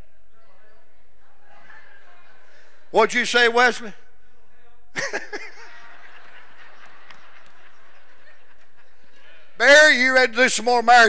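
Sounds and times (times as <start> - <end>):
faint laughter in hall: 5.0 - 9.6.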